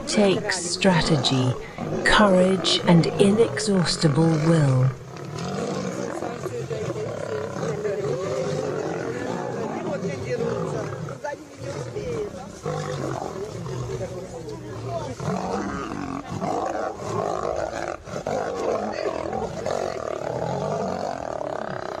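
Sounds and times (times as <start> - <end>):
lions growling and roaring: 0.0 - 22.0.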